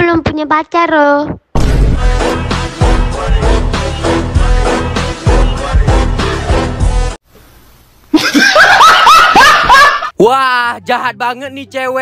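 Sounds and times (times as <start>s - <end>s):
man laughing loudly: 8.1s - 10.1s.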